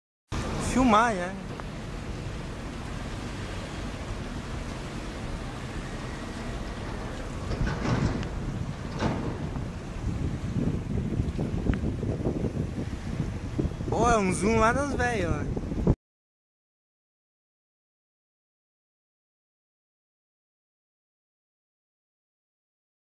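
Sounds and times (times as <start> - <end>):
water noise: 0.3 - 16.0
wind rushing over microphone: 0.4 - 16.0.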